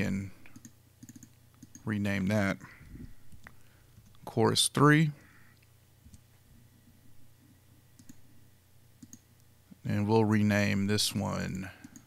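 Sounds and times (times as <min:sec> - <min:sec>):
low steady room hum: 0:00.0 - 0:12.0
computer mouse clicks: 0:00.4 - 0:01.9, 0:08.0 - 0:08.2, 0:09.0 - 0:09.5, 0:11.8 - 0:12.0.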